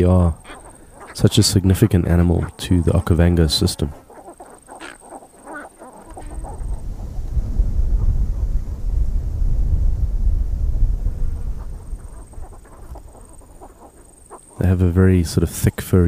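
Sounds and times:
birds clucking: 0.0 - 8.5, 10.9 - 16.0
loud low rumble: 6.3 - 12.5.

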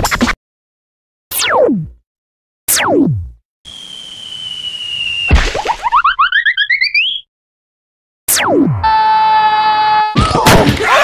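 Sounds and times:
high whistle over hiss: 3.7 - 5.4.

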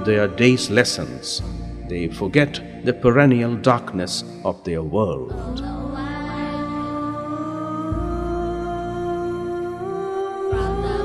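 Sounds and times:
slow music of held notes: 0.0 - 11.0.

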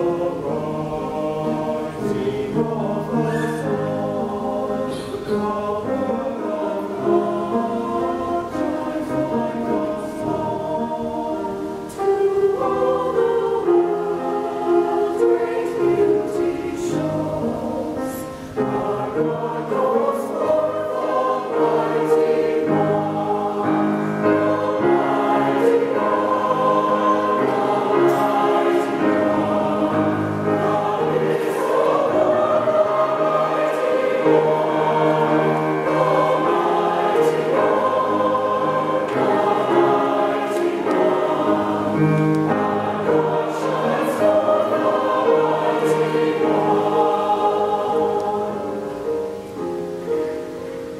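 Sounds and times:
mixed choir singing in harmony: 0.0 - 50.9.

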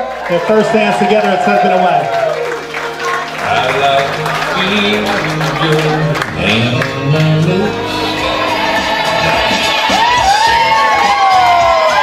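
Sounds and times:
crowd cheering and whooping: 0.0 - 12.0
music: 0.0 - 12.0.

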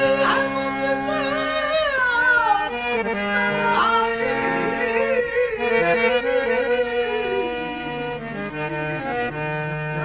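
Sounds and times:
harmonium chords: 0.0 - 10.0
melody with vibrato: 3.4 - 9.1.

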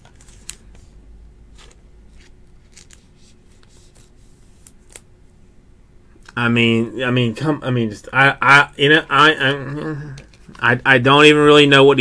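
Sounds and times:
trading card rustling and clicking: 0.0 - 0.9, 1.5 - 5.1
low steady room hum: 0.0 - 12.0.

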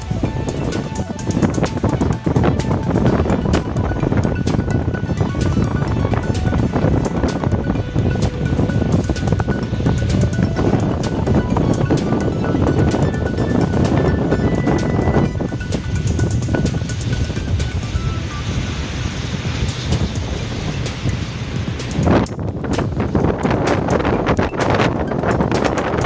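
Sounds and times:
faint music: 0.0 - 26.0
wind buffeting microphone: 0.0 - 26.0.

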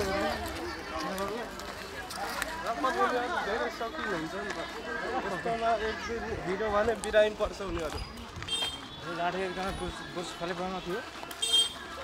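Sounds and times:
people's voices outdoors: 0.0 - 12.0.

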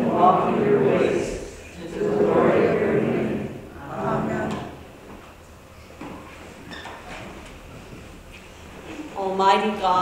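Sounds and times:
voices praying: 0.0 - 5.0.

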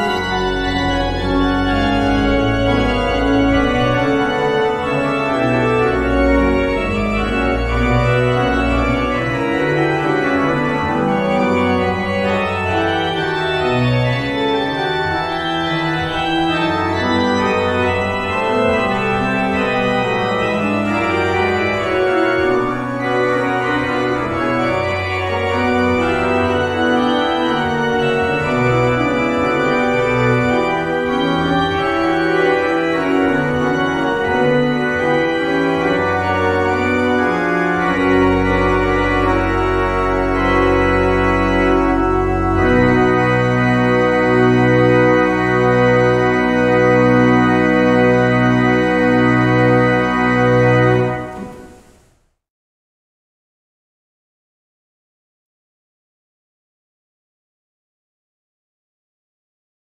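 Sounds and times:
church organ chords: 0.0 - 52.0.

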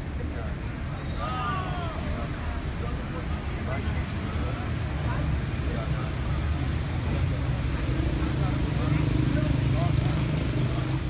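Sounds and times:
faint voices: 0.0 - 11.0
street traffic rumble: 0.0 - 11.0.

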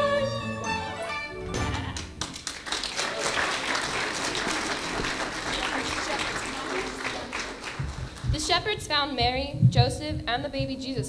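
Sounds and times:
congregation applauding: 1.8 - 8.5.

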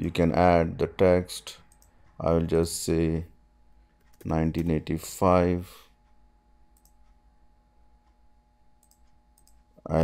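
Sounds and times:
low steady hum: 0.0 - 10.0
computer mouse clicks: 1.7 - 2.0, 6.7 - 7.2, 8.8 - 9.6.

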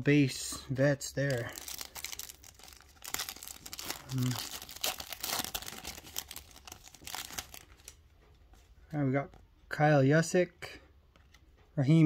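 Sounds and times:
foil wrapper tearing and crinkling: 1.2 - 8.0.

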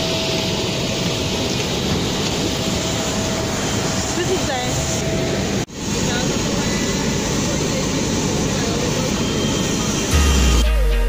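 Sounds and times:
jet aircraft roar: 0.0 - 10.6
deep bass note: 10.1 - 11.0.

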